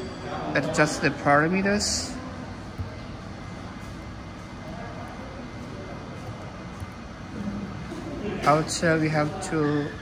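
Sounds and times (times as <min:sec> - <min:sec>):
cooling fans whirring: 0:00.0 - 0:10.0.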